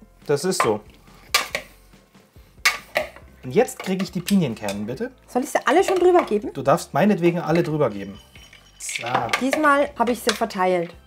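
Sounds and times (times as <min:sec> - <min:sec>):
metal servers scraping glass bowl: 0:02.7 - 0:04.9, 0:07.5 - 0:10.9.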